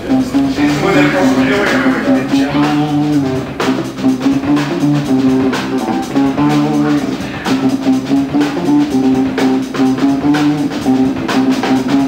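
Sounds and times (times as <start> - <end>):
bass guitar: 0.0 - 12.0
guitar playing held notes: 0.0 - 12.0.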